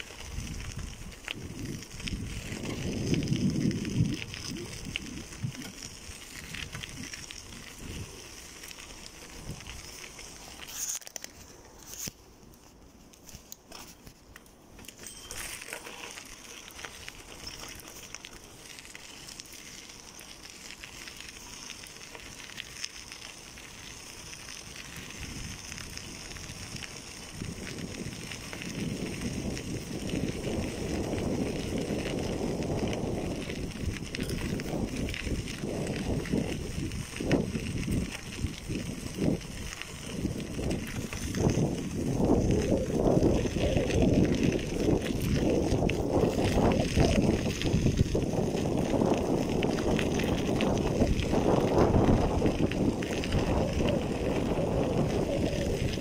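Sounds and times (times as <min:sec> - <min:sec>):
bicycle tyres on gravel: 0:00.0 - 0:56.0.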